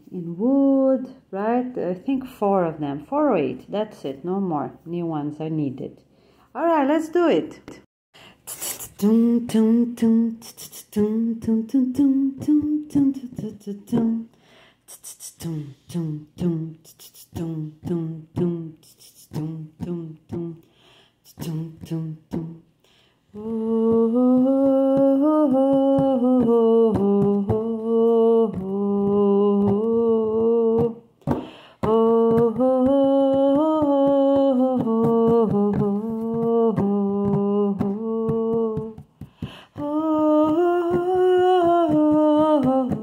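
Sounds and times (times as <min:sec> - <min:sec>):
vocal percussive hits: 0:08.4 - 0:22.7, 0:23.3 - 0:43.0
person singing clipped notes: 0:08.5 - 0:22.7, 0:23.3 - 0:43.0
hummed melody: 0:09.0 - 0:14.3, 0:15.0 - 0:20.7, 0:21.3 - 0:22.7, 0:23.4 - 0:39.0, 0:39.8 - 0:43.0.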